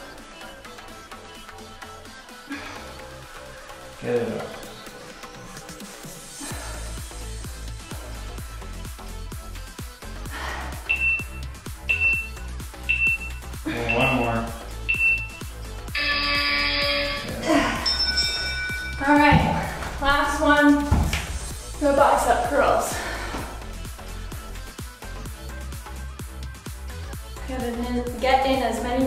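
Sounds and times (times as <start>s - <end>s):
background music: 0.0s - 29.0s
short high beeps: 10.9s - 14.3s, 14.9s - 15.4s
long low buzzer tone: 15.9s - 17.5s.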